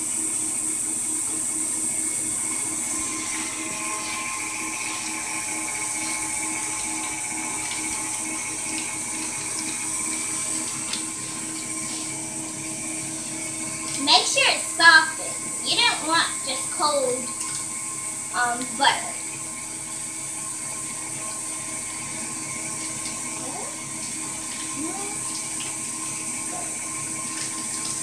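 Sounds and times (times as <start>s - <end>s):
stand mixer motor whirring: 0.0s - 28.0s.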